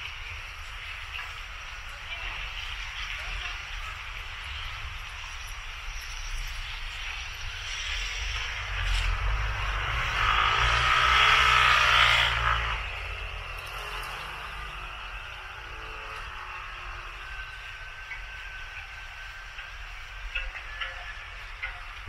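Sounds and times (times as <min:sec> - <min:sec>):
city background noise: 0:00.0 - 0:22.0
vehicle passing close by: 0:08.1 - 0:17.1.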